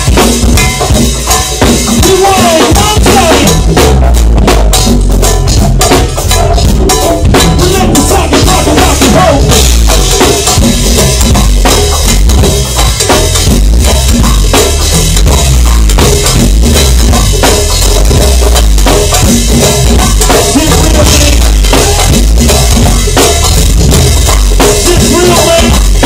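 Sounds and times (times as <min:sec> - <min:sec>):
driving drum kit beat: 0:00.0 - 0:26.0
heavy bass: 0:00.0 - 0:26.0
live band playing loud: 0:00.0 - 0:26.0.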